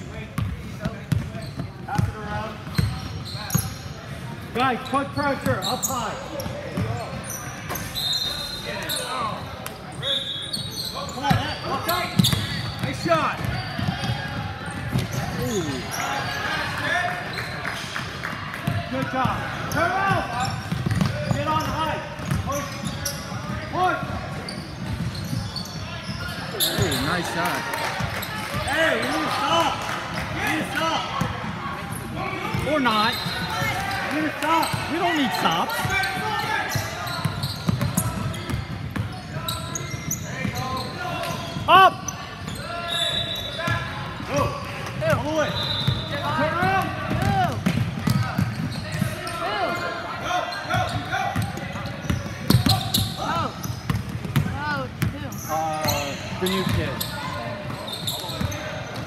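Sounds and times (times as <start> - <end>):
shouts and chatter: 25.2 - 53.7.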